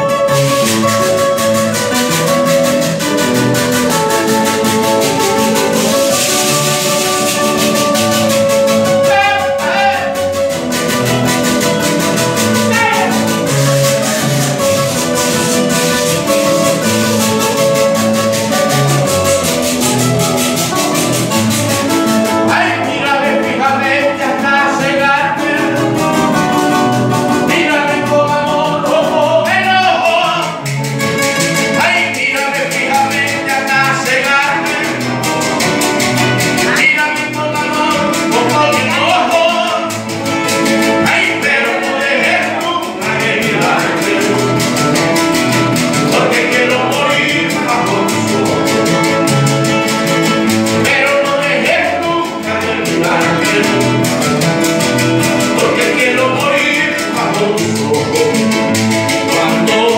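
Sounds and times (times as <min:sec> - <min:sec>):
acoustic guitars strumming: 0:00.0 - 0:59.9
hand percussion: 0:00.0 - 0:59.9
person singing: 0:00.0 - 0:59.9.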